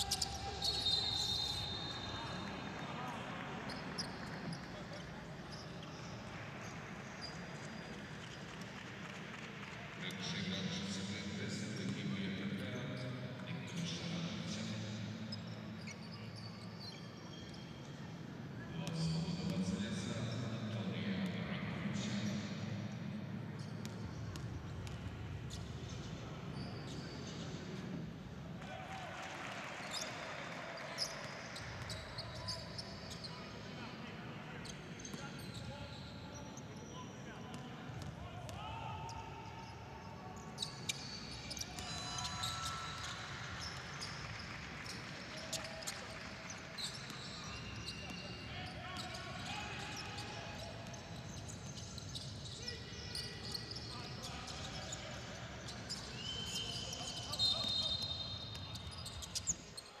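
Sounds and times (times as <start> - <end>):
sneakers squeaking: 0.0 - 8.4, 13.8 - 20.3, 23.6 - 28.0, 29.6 - 60.0.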